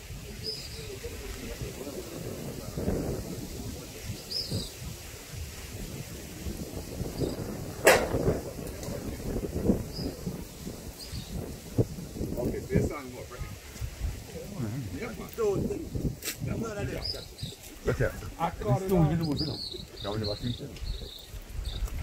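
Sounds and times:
wind rumble on microphone: 0.0 - 22.0
microphone handling noise: 7.0 - 10.4, 13.6 - 22.0
sharp crack: 7.8 - 9.0.

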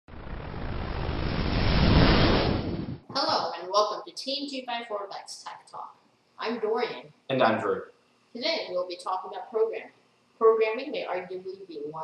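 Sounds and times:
whoosh with deep rumble: 0.1 - 3.2.

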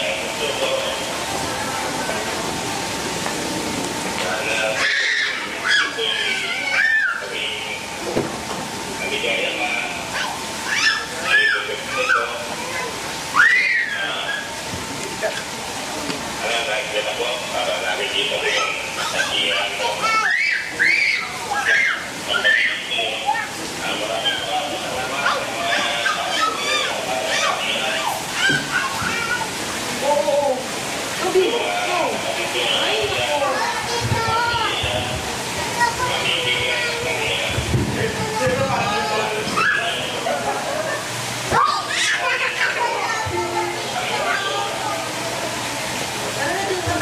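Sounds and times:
crowd talking and calling out: 0.0 - 47.0.

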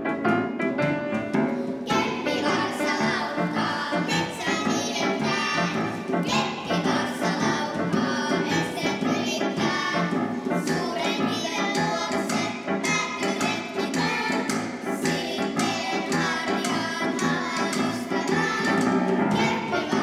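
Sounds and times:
instrumental accompaniment: 0.0 - 20.0
children singing: 1.8 - 20.0.

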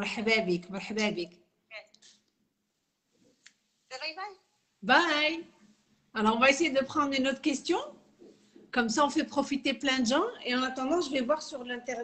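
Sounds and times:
woman speaking: 0.0 - 2.0, 3.9 - 8.0, 8.7 - 12.0.

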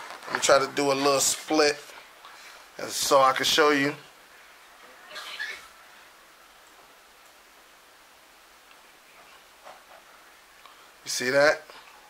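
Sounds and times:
soft rustle: 0.0 - 2.6
low even hiss: 0.0 - 12.0.

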